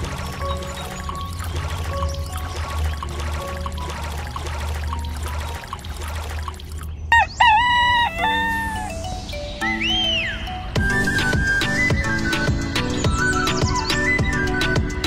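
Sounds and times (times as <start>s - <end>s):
background music: 0.0s - 15.0s
rooster crowing: 7.1s - 8.9s.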